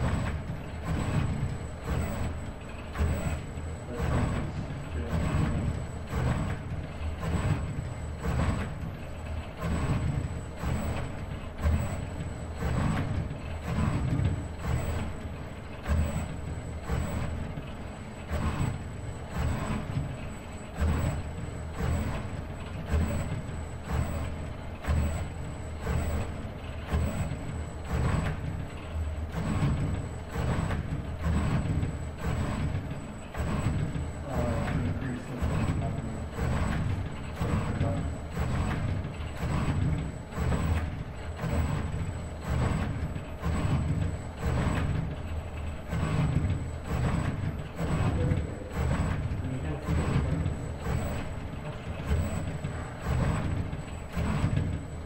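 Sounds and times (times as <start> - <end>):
robot arm servo motors humming: 0.0 - 55.0.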